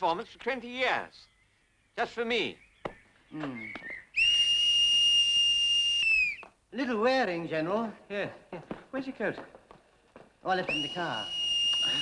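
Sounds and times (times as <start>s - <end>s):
long high whistle: 4.2s - 6.4s, 10.7s - 12.0s.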